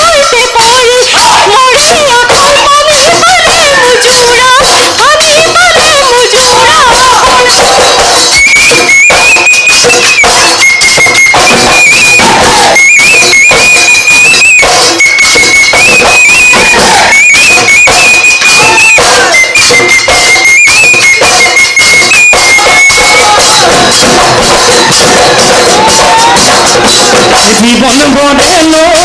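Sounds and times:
drums beating fast rhythm: 0:00.0 - 0:29.0
high-pitched wind instrument melody: 0:00.0 - 0:29.0.

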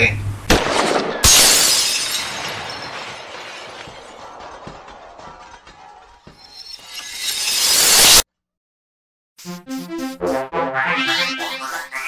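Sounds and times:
loud shattering crash: 0:00.6 - 0:05.0, 0:06.4 - 0:08.2
breaking fragments tinkling: 0:01.1 - 0:04.2, 0:06.3 - 0:08.2.

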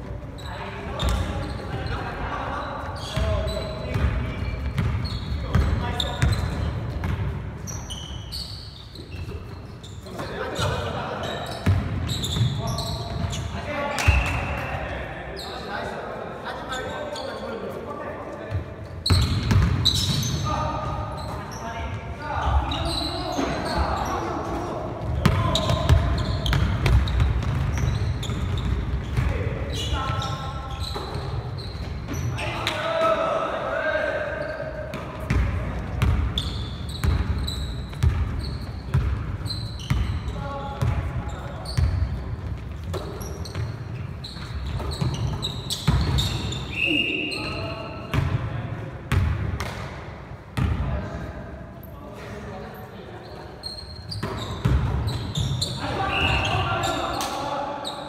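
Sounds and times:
sneaker squeaks: 0:00.0 - 0:48.4, 0:52.7 - 0:58.0
players calling out: 0:53.6 - 0:58.0.

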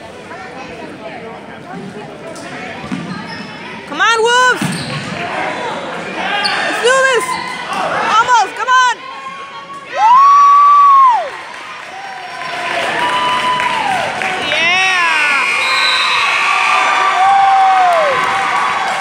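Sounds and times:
game noise in a hall: 0:00.0 - 0:19.0.

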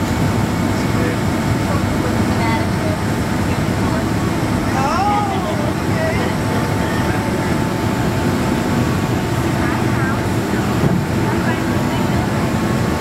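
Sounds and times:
airplane cabin engine noise: 0:00.0 - 0:13.0
faint voices: 0:00.2 - 0:13.0.

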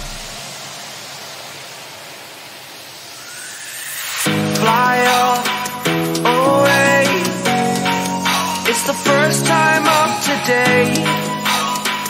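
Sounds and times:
music track: 0:04.3 - 0:12.0.

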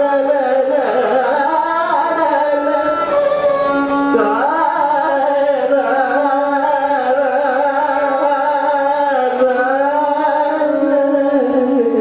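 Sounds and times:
violin accompaniment: 0:00.0 - 0:08.6
man singing ornamented phrases: 0:00.0 - 0:12.0.

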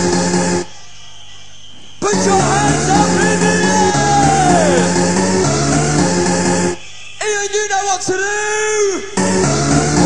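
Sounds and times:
rave dance music: 0:00.0 - 0:10.0.

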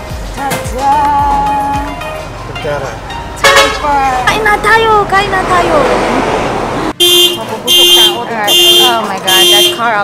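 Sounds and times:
people talking: 0:03.7 - 0:06.0, 0:07.4 - 0:10.0.

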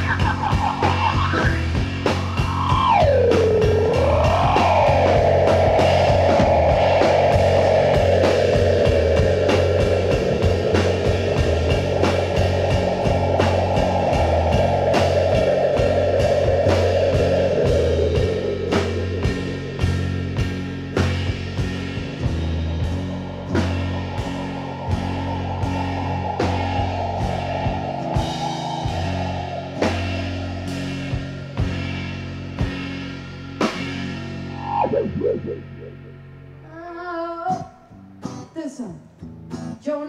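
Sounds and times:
live rock band playing: 0:00.0 - 0:36.8
swooping lead guitar line: 0:00.0 - 0:39.8.

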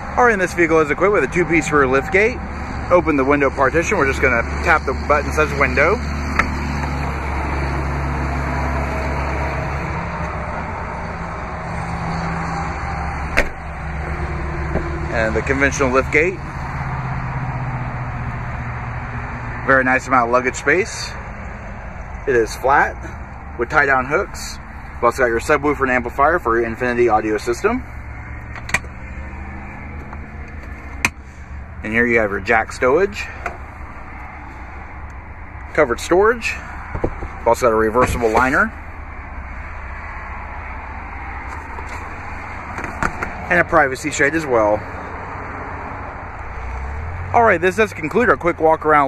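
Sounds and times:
engine idling hum: 0:00.0 - 0:49.0.

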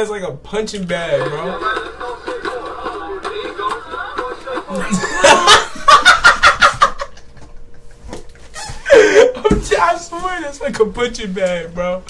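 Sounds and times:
man laughing hard: 0:01.3 - 0:08.0, 0:08.7 - 0:09.8.

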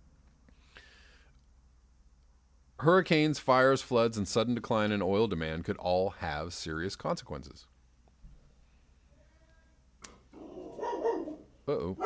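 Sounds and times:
dog barking: 0:10.4 - 0:12.0.

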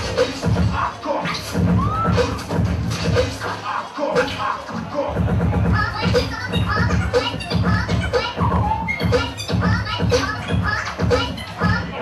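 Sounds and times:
steady drum beat: 0:00.0 - 0:00.9, 0:01.5 - 0:03.4, 0:04.2 - 0:12.0.

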